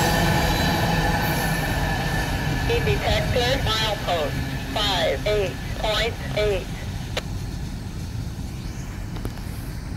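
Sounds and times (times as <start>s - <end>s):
freight train rumbling: 0.0s - 9.9s.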